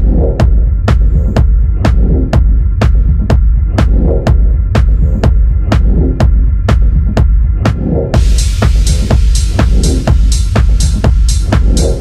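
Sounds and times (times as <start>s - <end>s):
techno track: 0.0s - 12.0s
heavy sustained bass: 8.2s - 12.0s
synth drone: 8.2s - 12.0s.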